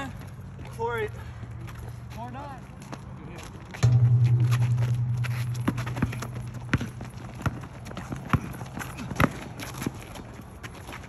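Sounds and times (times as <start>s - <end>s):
running footsteps: 1.6s - 11.0s
low hum: 3.8s - 7.8s
basketball thudding on asphalt: 3.8s - 9.6s.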